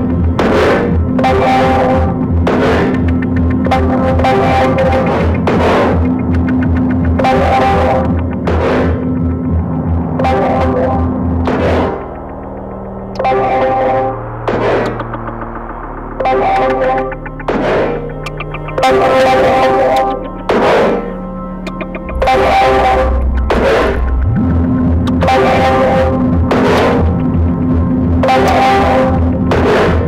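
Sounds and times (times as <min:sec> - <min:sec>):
bass notes: 0:00.0 - 0:30.0
distorted electric guitar: 0:00.0 - 0:30.0.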